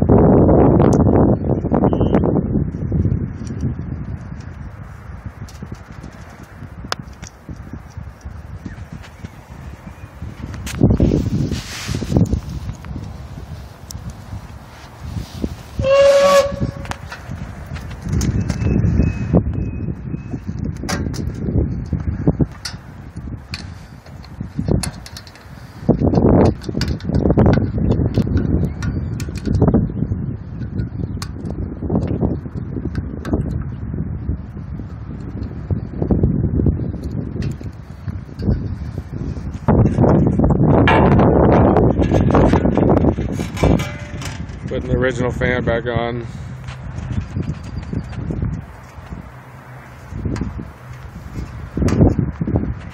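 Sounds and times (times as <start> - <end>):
whistle-like tone: 1.9 - 2.2, 15.8 - 16.8, 18.6 - 20.4
handling rustles and scrapes: 5.5 - 18.7, 41.8 - 45.3.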